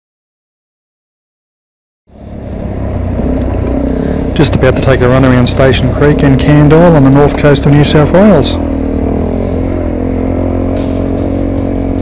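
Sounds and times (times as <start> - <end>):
motorcycle engine running: 2.1 - 12.0.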